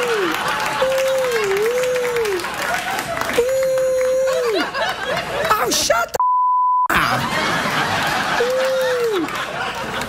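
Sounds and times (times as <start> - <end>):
censor bleep tone: 6.2 - 6.9.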